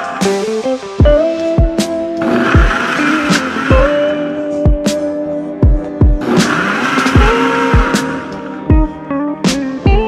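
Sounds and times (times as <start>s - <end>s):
lo-fi music with steady beat: 0.0s - 10.0s
blender whirring: 2.2s - 4.3s, 6.2s - 8.6s.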